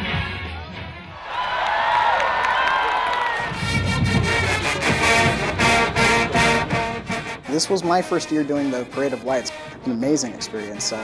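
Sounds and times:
crowd cheering: 1.0s - 6.7s
pep band playing: 3.2s - 11.0s
steady drum beat: 3.2s - 11.0s.

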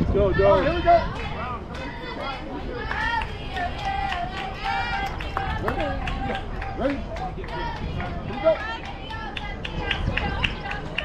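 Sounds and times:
steady low rumble: 0.0s - 11.0s
voices talking and calling out: 0.0s - 11.0s.

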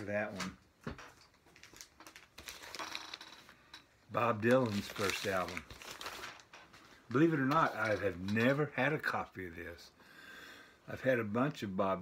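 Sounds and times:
plastic sleeve crinkling: 0.0s - 8.8s.

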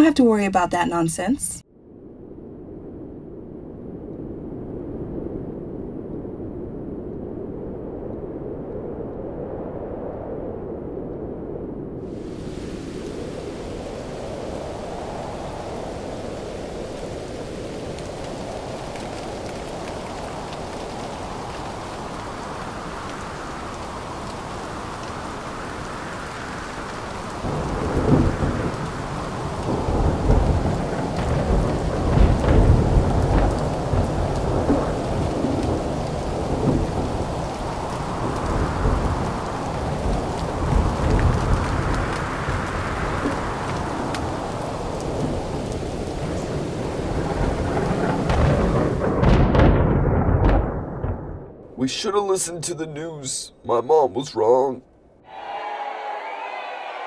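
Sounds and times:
thunder rumbling: 1.9s - 52.1s
heavy rain: 12.0s - 53.4s, 55.3s - 57.0s.

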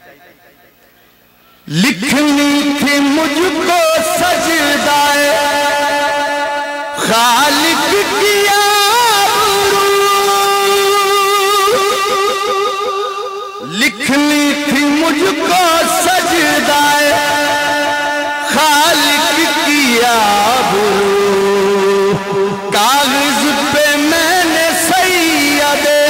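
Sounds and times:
repeating echoes: 1.6s - 26.0s
man chanting into a microphone: 1.7s - 26.0s
man singing a long note: 1.7s - 26.0s.

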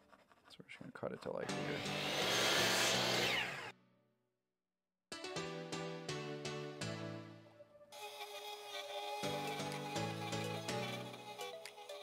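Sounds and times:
miter saw whine: 1.5s - 3.7s.

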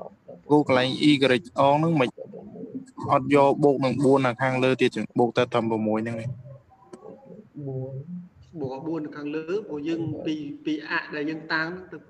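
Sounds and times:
man speaking: 0.0s - 6.4s, 8.7s - 12.0s.

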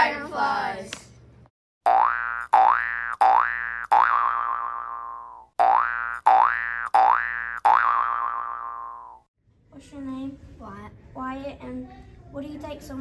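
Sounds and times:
cartoon springy boings: 1.8s - 9.3s.

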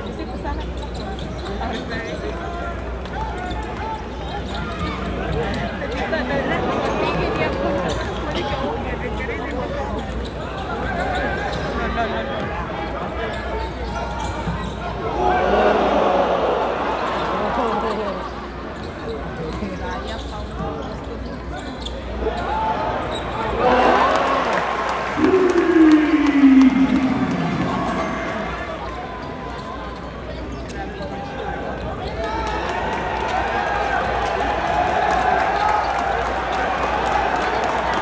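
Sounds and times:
murmur of crowd voices: 0.0s - 38.0s
long call falling in pitch: 25.2s - 28.8s.

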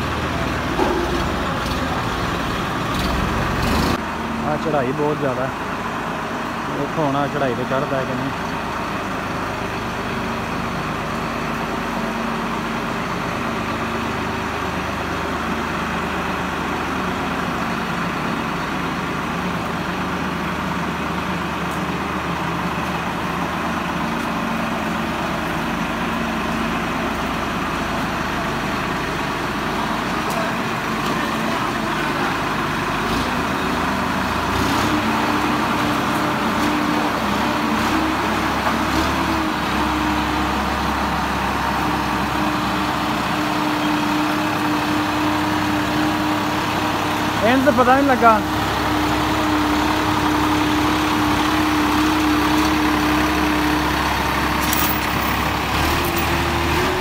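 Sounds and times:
tractor diesel engine working hard: 0.0s - 57.0s.

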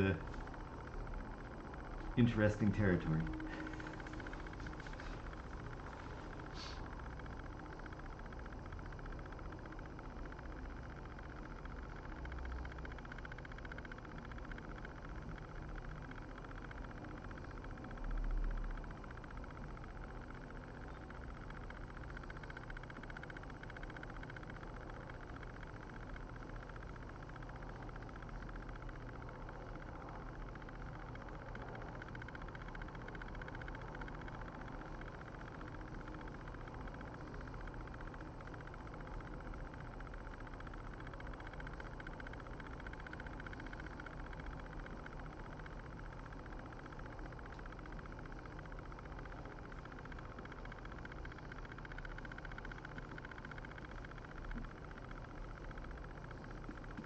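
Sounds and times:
low hum: 0.0s - 57.0s.

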